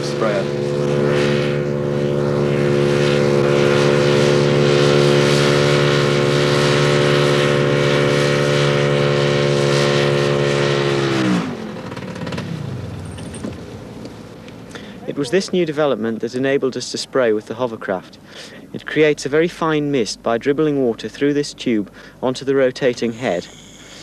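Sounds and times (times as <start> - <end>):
small hovercraft engine running: 0.0 - 15.6, 23.0 - 24.0
engine running down: 0.0 - 24.0.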